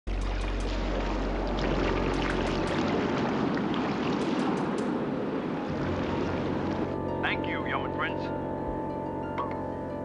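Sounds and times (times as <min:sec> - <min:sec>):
water splashing around raft: 0:00.2 - 0:07.0.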